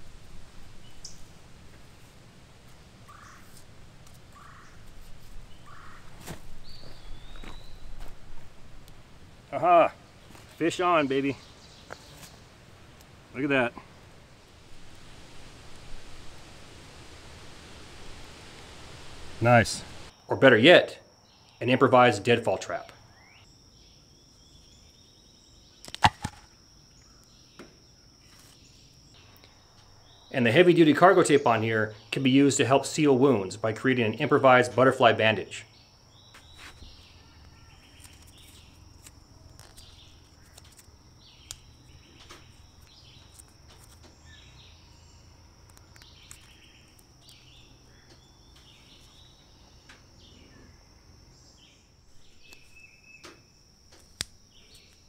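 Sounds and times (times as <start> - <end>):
high insect buzz: 35.8 - 55.0
sharp snap: 53.9 - 54.9.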